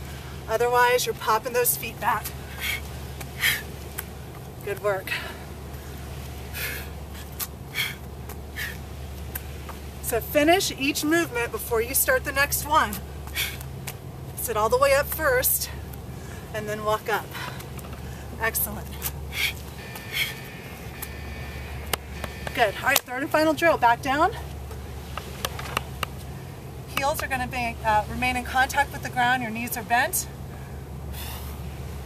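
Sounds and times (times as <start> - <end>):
low outdoor rumble: 0.0 - 32.0
low steady hum: 0.0 - 32.0.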